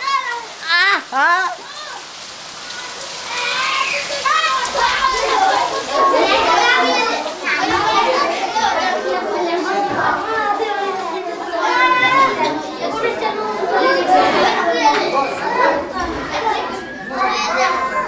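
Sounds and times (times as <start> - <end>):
young children chattering: 0.0 - 18.0.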